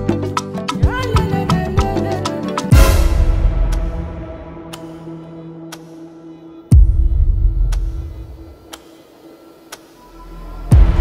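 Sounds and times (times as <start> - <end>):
low background music: 0.0 - 11.0
clock ticking: 6.7 - 9.0.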